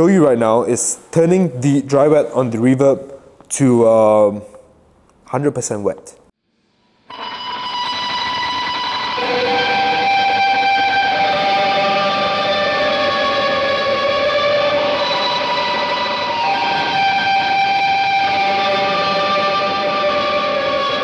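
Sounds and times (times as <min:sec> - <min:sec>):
electric guitar with reverb: 0:07.0 - 0:21.0.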